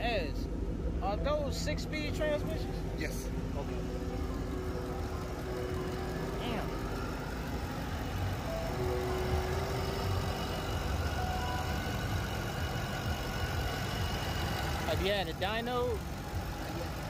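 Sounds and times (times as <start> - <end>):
background music: 0.0 - 17.0
low engine rumble: 0.0 - 17.0.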